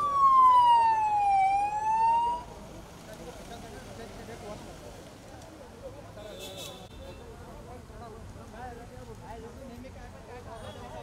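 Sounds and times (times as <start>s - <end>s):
vehicle siren sweep: 0.0s - 2.5s.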